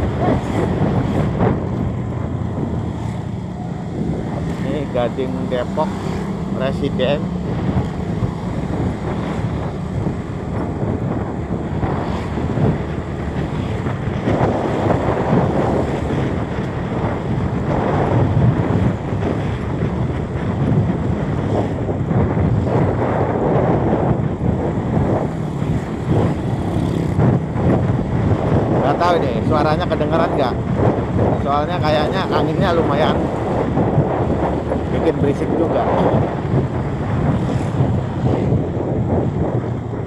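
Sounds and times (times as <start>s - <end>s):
low engine hum: 0.0s - 29.4s
wind buffeting microphone: 0.0s - 40.0s.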